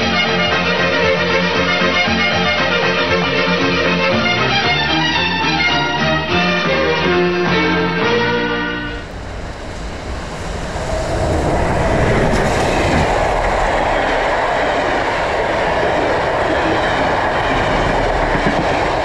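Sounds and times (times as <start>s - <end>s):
passenger train passing: 0.0s - 19.0s.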